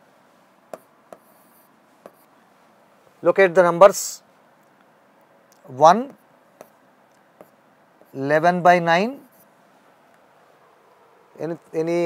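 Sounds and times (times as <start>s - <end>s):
pen tapping on writing board: 0.7s - 1.4s, 2.0s - 2.3s, 6.1s - 6.8s, 7.4s - 8.1s
pen scratching: 0.7s - 2.3s, 6.1s - 6.8s, 7.4s - 8.2s, 9.2s - 9.5s.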